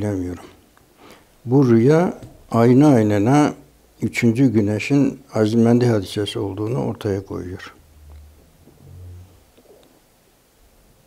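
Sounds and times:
man humming low: 0:08.7 - 0:09.5.

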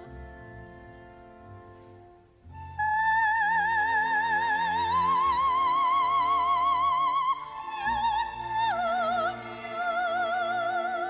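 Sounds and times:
orchestra playing: 0:00.0 - 0:11.0
operatic soprano singing: 0:02.6 - 0:11.0.

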